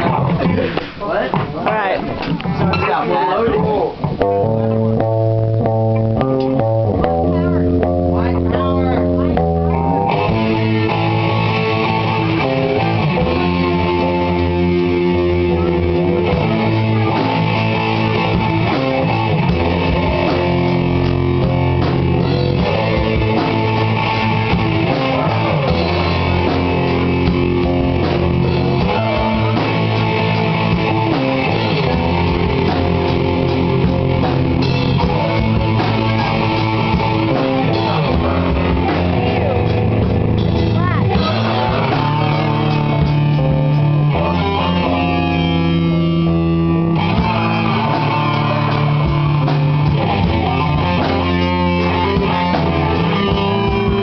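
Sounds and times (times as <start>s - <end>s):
bass guitar: 0.0s - 54.0s
drum kit and cymbals: 3.6s - 54.0s
electric guitar chords: 3.6s - 54.0s.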